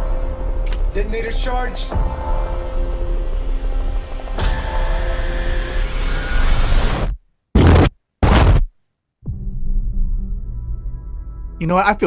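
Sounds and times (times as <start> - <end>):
dramatic trailer music: 0.0 - 7.2, 9.2 - 11.7
sharp hit: 7.6 - 8.7.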